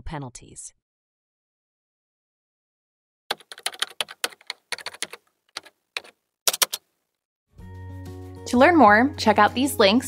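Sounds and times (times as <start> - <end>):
computer keyboard typing: 3.3 - 6.8.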